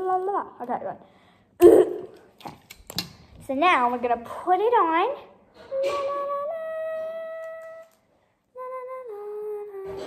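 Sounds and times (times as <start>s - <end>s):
girl humming long notes: 8.6s - 10.0s.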